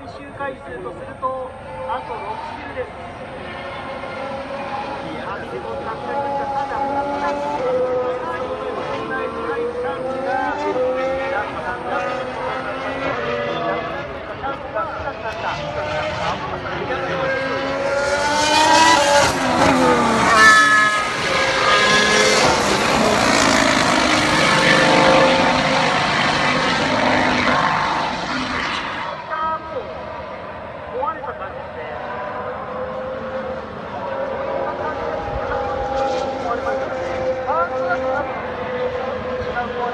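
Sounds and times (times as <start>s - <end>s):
racing cars passing: 0.0s - 39.9s.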